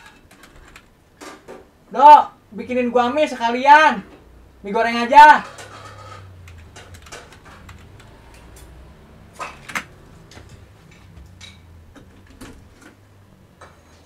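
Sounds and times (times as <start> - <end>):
laptop keys typing: 0.0 - 0.9, 6.0 - 8.7
low steady hum: 0.4 - 14.0.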